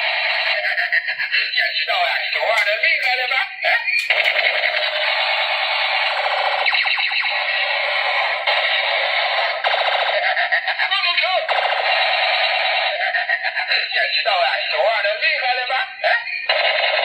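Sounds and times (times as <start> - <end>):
toy gun electronic buzz: 3.9 - 10.4.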